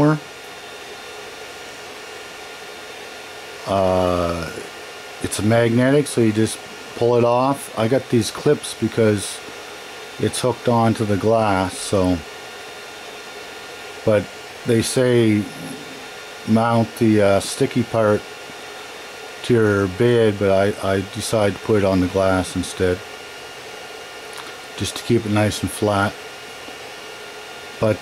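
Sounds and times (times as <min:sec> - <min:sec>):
three-d printer whirring: 0:00.0 - 0:28.0.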